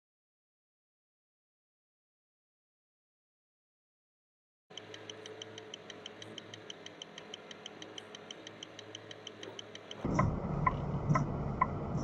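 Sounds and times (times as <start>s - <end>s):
quick light ticking: 4.7s - 11.7s
low steady truck cab drone: 4.7s - 12.0s.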